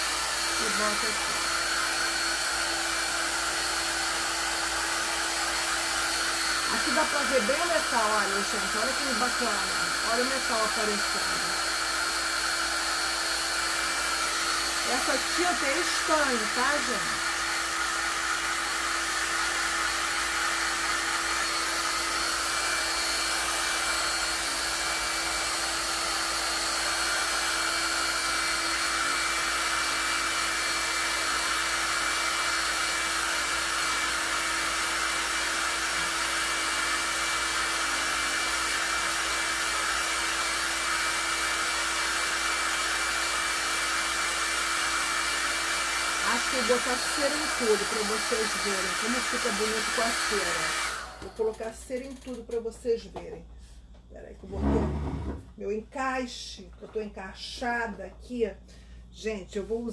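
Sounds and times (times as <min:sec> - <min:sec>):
hair dryer blowing: 0:00.0 - 0:52.7, 0:54.4 - 0:55.6.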